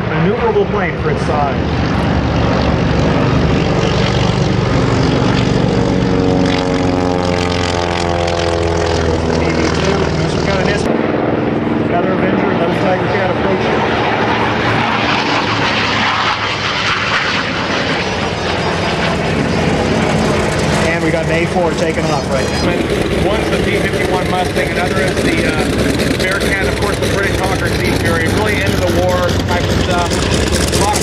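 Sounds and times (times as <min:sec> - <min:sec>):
propeller plane engine drone: 0:00.0 - 0:31.0
voices: 0:09.0 - 0:10.9, 0:11.8 - 0:15.2, 0:18.9 - 0:31.0.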